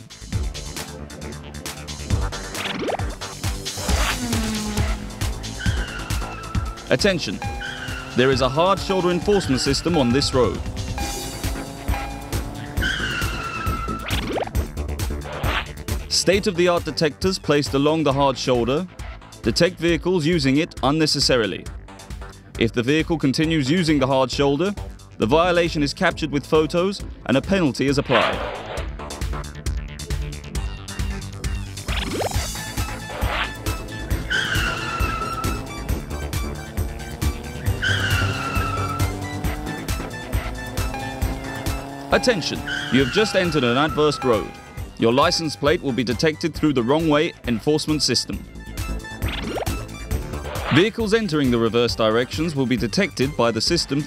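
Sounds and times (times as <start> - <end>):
background music with beat: 0.0 - 17.8, 28.5 - 47.5, 48.3 - 52.1
engine tone rising in pitch: 3.7 - 14.6, 32.0 - 45.9
tyre screech: 3.8 - 10.7, 11.9 - 14.3, 32.9 - 40.5, 42.1 - 44.8
cartoon tire squeals: 3.8 - 11.3, 11.9 - 14.5, 31.4 - 45.9.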